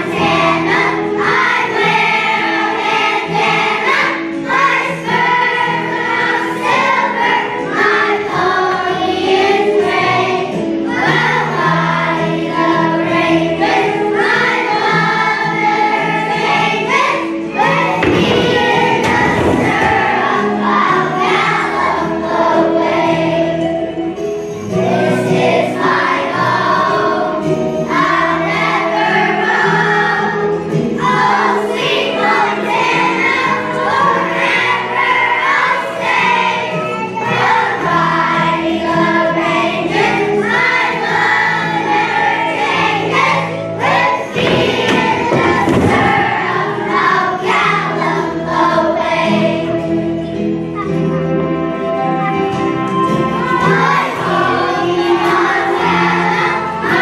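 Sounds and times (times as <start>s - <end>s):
children's choir singing: 0.0s - 57.0s
instrumental accompaniment: 0.0s - 57.0s.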